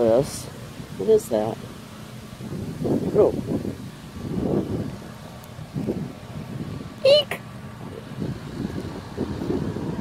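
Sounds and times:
wind noise on microphone: 2.3 - 10.0.

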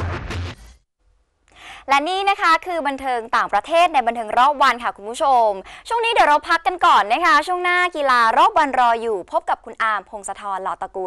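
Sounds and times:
woman speaking: 1.8 - 11.0.

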